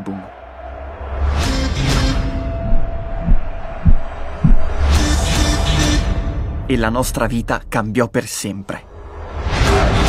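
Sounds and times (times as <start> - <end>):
low rumble: 1.8 - 8.0
deep bass thumps: 2.5 - 5.2.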